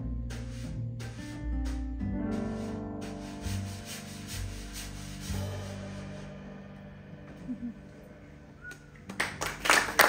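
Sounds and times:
drum kit swishing: 0:00.0 - 0:08.9
double bass notes: 0:00.0 - 0:09.3.

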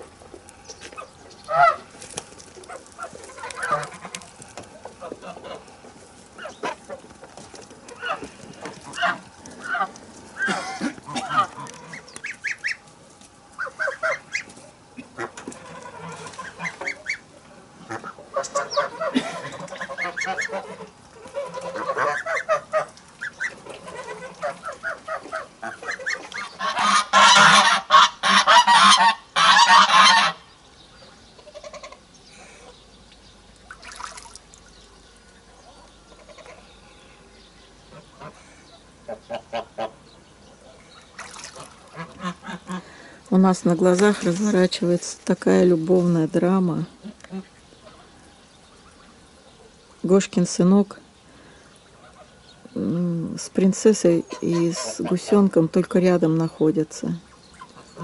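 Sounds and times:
geese honking: 0:01.0 - 0:05.8, 0:07.8 - 0:12.9, 0:13.5 - 0:30.5, 0:41.7 - 0:43.1.

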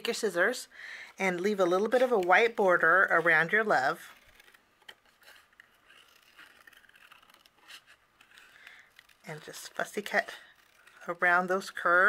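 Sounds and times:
scissors snipping cardstock: 0:01.4 - 0:12.0.

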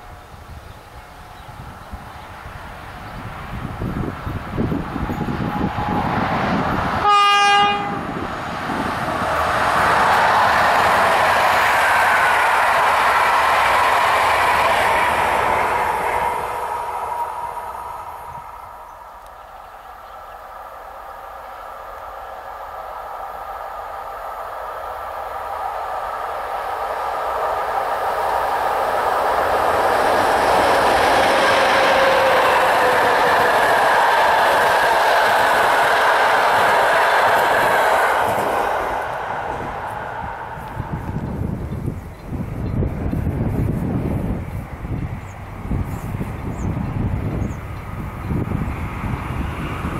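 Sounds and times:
train passing with rail noise: 0:00.0 - 0:49.9
train horn blast: 0:07.0 - 0:08.2, 0:31.2 - 0:33.3.

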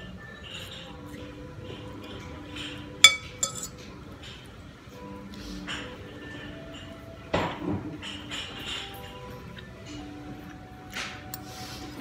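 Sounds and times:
cutlery clinking on ceramic plate: 0:02.5 - 0:04.5, 0:06.7 - 0:09.3.

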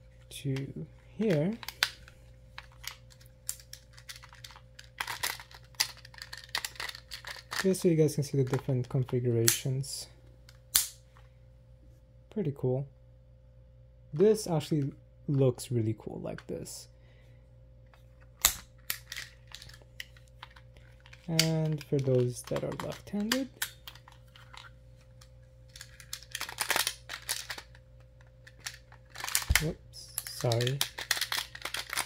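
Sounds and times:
plastic toy parts clicking: 0:02.6 - 0:07.7, 0:18.4 - 0:24.7, 0:25.7 - 0:32.0.

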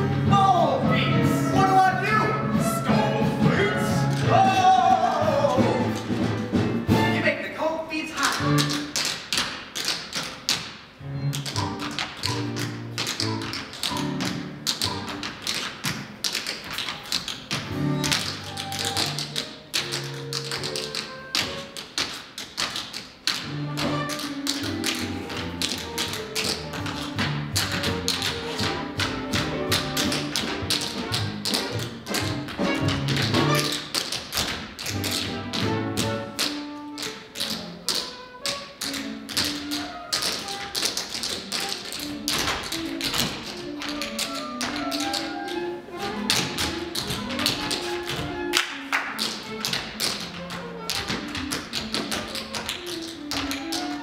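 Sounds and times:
instrumental accompaniment: 0:00.0 - 0:54.0
tap shoes on stage floor: 0:00.0 - 0:54.0.

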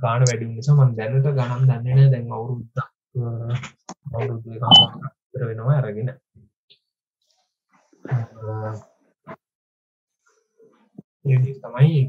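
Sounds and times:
man talking: 0:00.0 - 0:06.2, 0:08.1 - 0:08.8, 0:11.3 - 0:12.0.

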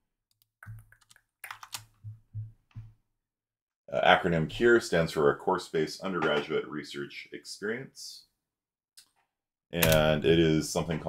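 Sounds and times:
keyboard keys clicking: 0:00.7 - 0:02.0.

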